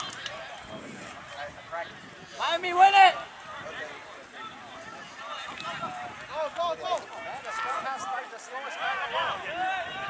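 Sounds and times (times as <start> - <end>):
distant shouts and calls: 0.0 - 10.0.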